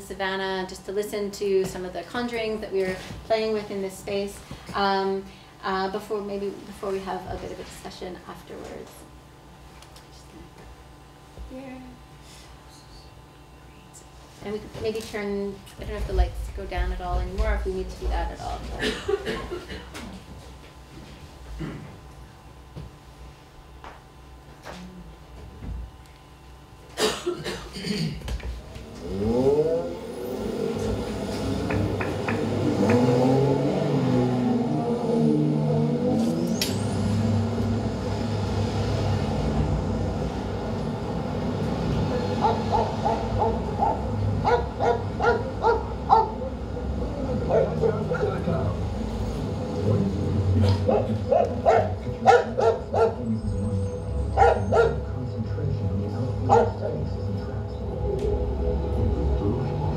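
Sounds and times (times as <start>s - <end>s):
steady low hum: 0.0s - 59.9s
layered droning tones: 28.9s - 59.9s
dog barking: 42.3s - 46.6s, 47.4s - 48.3s, 50.8s - 53.4s, 54.3s - 55.1s, 56.5s - 57.0s
high sweeping whistle: 53.3s - 54.8s.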